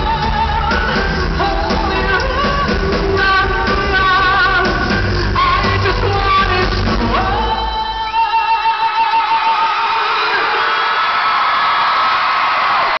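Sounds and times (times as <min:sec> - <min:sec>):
rock band playing: 0:00.0 - 0:10.4
crowd screaming and cheering: 0:04.5 - 0:13.0.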